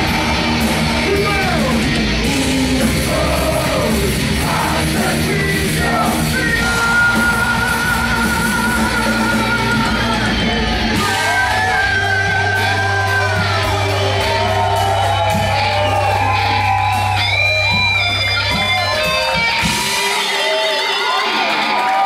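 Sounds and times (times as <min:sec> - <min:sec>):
singer yelling: 0:00.0 - 0:17.0
crowd voices: 0:00.0 - 0:22.0
live rock band playing: 0:00.0 - 0:22.0.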